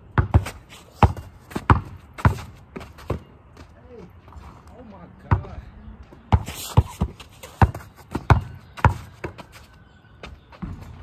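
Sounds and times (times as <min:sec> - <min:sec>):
basketball bouncing on dirt: 0:00.0 - 0:04.4, 0:05.2 - 0:09.6, 0:10.2 - 0:11.0.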